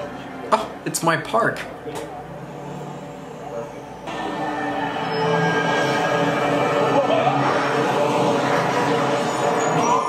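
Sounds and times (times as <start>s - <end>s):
bus engine drone: 0.0s - 0.9s, 1.5s - 10.0s
street traffic: 0.0s - 1.0s, 1.6s - 10.0s.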